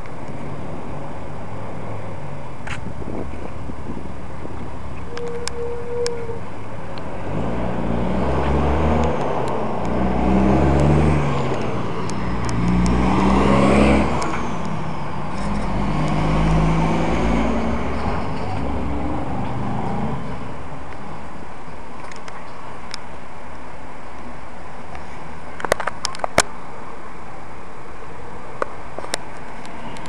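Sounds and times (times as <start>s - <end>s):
road noise: 0.0s - 30.0s
car engine: 6.3s - 21.6s.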